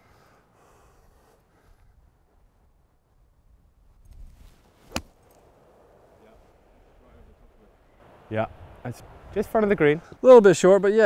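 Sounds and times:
soft hiss: 0:00.0 - 0:10.8.

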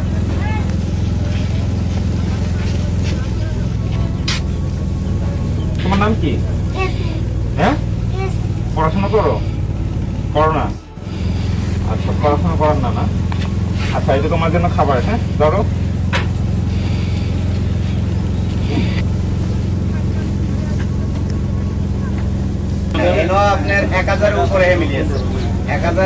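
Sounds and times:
vehicle engine humming: 0:00.0 - 0:26.0.

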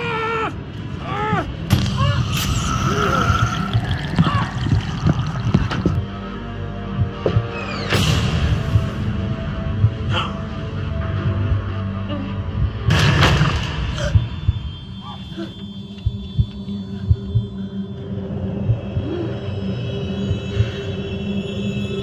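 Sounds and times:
low tense music drone: 0:00.0 - 0:22.0.

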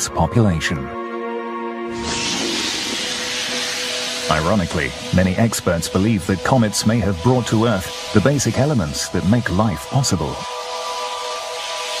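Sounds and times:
faint background music: 0:00.0 - 0:12.0
rushing whoosh sound effect: 0:01.9 - 0:05.8.

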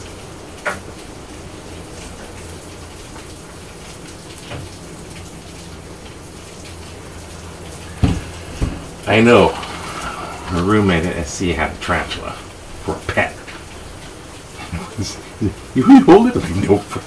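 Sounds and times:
rain hissing: 0:00.0 - 0:17.0.

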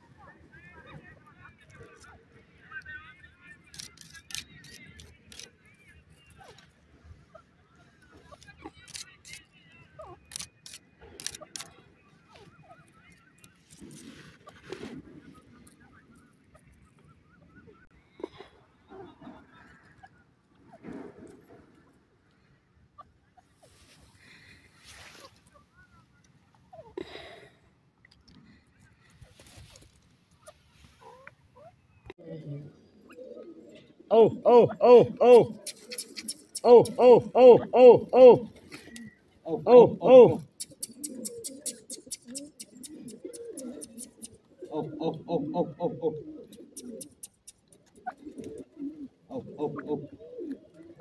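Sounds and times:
faint scattered sounds: 0:00.0 - 0:26.9, 0:35.1 - 0:37.4, 0:40.2 - 0:51.0
bird calling: 0:33.0 - 0:51.0
sharp clicks: 0:35.4 - 0:37.2, 0:40.4 - 0:44.4, 0:46.5 - 0:47.9.

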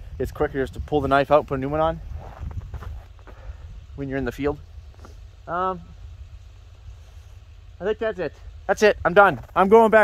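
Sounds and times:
wind buffeting microphone: 0:00.0 - 0:07.8.

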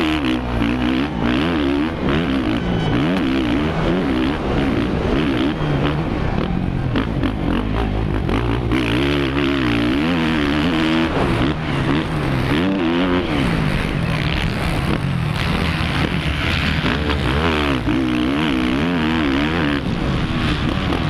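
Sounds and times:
motocross engine revving: 0:00.0 - 0:21.0.

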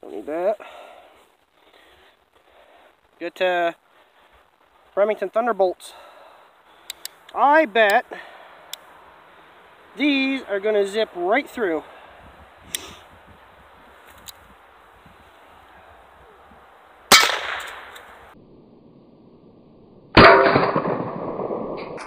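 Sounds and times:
revolver handling clicks: 0:06.8 - 0:07.4
revolver gunshots: 0:17.1 - 0:18.0, 0:20.2 - 0:22.0.

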